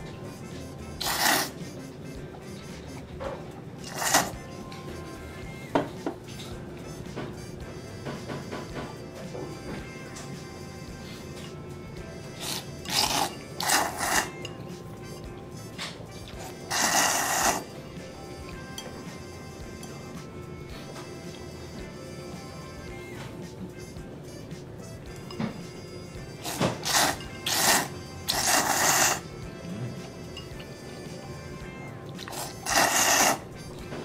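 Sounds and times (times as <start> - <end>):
person slurping noodles: 0.6 - 1.9, 3.8 - 4.5, 12.3 - 14.5, 16.3 - 17.8, 26.4 - 30.2, 32.2 - 33.5.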